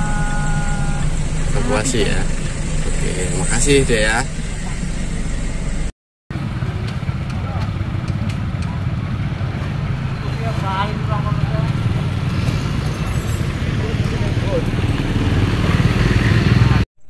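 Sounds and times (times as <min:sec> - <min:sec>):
background voices: 0:00.0 - 0:05.4
car and motorcycle engines: 0:00.0 - 0:16.9.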